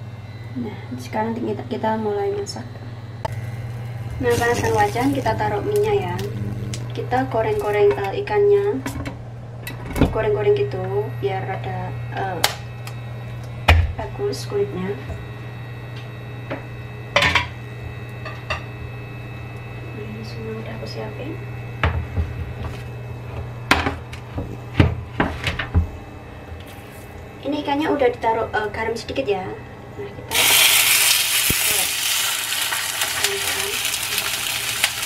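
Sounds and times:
steady low hum: 0.0 - 35.0
fish sizzling in frying oil: 30.3 - 35.0
oil popping and crackling: 30.3 - 35.0.

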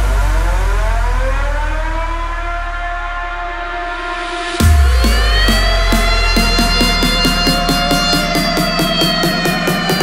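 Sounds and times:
deep bass: 0.0 - 10.0
siren-like synth tone: 0.2 - 10.0.

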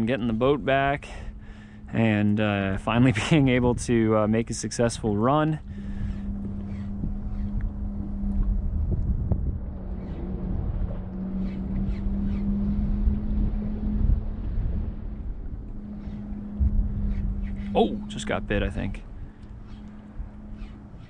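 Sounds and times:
steady low hum: 0.0 - 21.0
wind buffeting microphone: 0.0 - 21.0.

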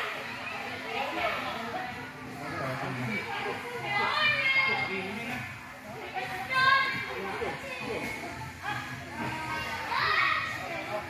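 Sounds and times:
children playing and chattering: 0.0 - 11.0.

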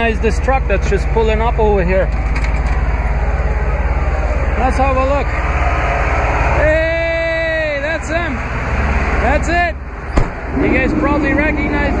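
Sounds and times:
truck engine rumble: 0.0 - 12.0.

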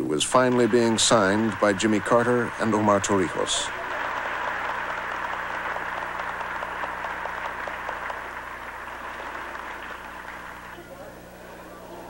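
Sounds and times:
crowd clapping: 0.2 - 11.3.

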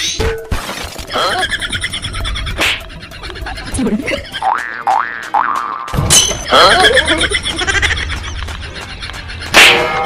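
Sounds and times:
wobbling boing: 4.4 - 6.2.

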